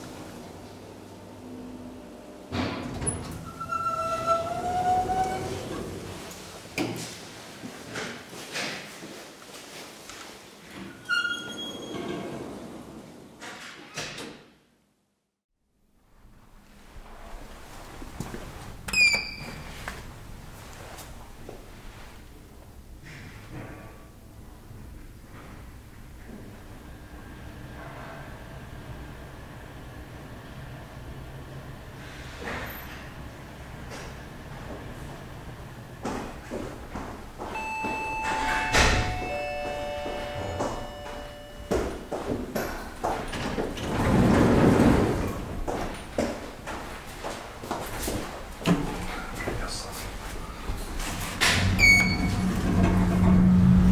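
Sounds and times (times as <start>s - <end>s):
elevator doors sliding open: 2.5s - 6.5s, 37.5s - 46.1s, 50.5s - 53.9s.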